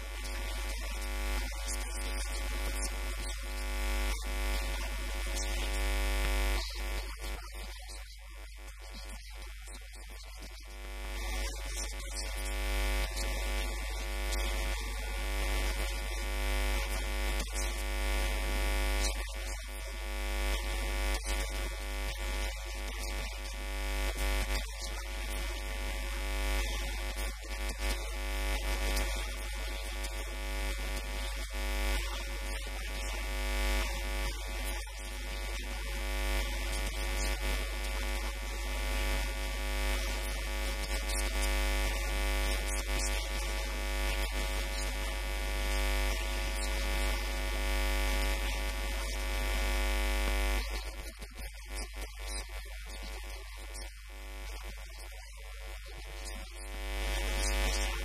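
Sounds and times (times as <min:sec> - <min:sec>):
electrical interference buzz: 0:00.0 - 0:58.0.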